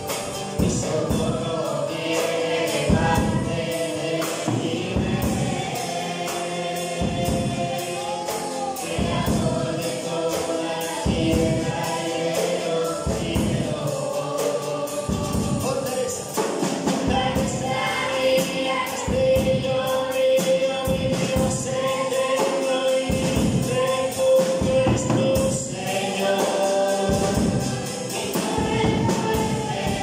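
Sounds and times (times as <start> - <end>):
acoustic guitar strumming: 0.0 - 30.0
people singing a hymn: 0.0 - 30.0.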